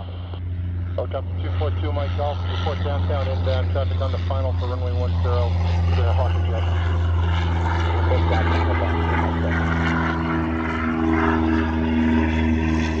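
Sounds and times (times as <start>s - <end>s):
jet engines rumbling: 0.0s - 13.0s.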